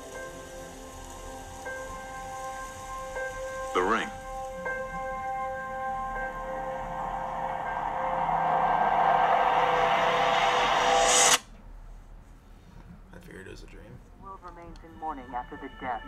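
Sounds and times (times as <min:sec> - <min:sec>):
sustained music tones: 0:00.0 - 0:11.4
rush of noise: 0:00.0 - 0:11.5.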